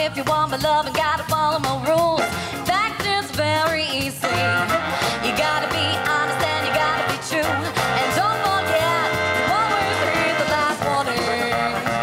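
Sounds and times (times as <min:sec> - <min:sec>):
live ska-jazz band playing: 0:00.0 - 0:12.0
woman singing: 0:00.0 - 0:12.0
trumpet: 0:01.8 - 0:12.0
saxophones: 0:04.1 - 0:12.0.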